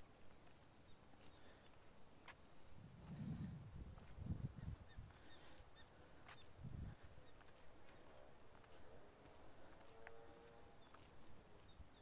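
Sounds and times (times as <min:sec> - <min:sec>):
high insect hiss: 0:00.0 - 0:12.0.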